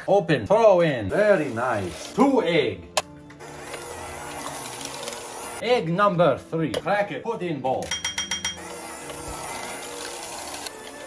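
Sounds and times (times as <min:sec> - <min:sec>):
electric hand mixer beating batter: 0:01.1 - 0:02.2, 0:03.4 - 0:05.6, 0:08.3 - 0:11.0.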